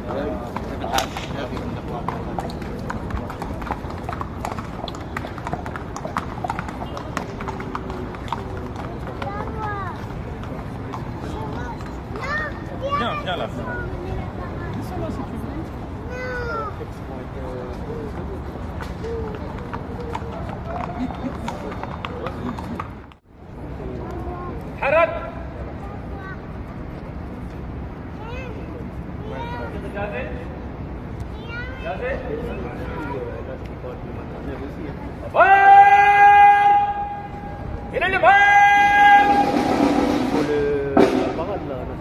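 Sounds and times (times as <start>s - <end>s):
crowd voices: 0.0s - 42.0s
horse hooves clip-clopping on stone: 0.4s - 12.2s, 18.1s - 23.2s.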